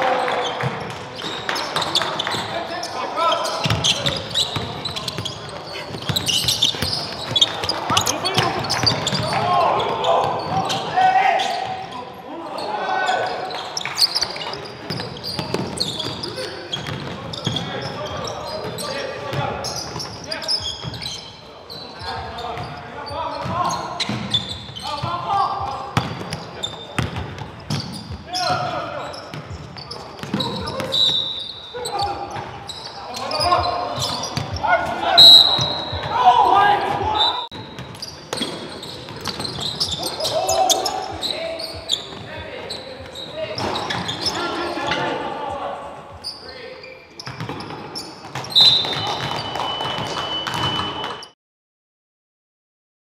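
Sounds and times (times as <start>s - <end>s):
players shouting: 0.0s - 20.7s, 30.3s - 37.5s, 39.8s - 46.7s
shoe squeaks: 0.3s - 36.3s, 37.1s - 45.0s, 46.2s - 51.3s.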